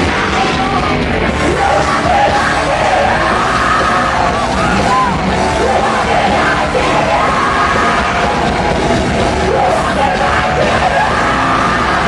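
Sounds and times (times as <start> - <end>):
crowd yelling and singing along: 0.0 - 12.0
heavy rock band playing: 0.0 - 12.0.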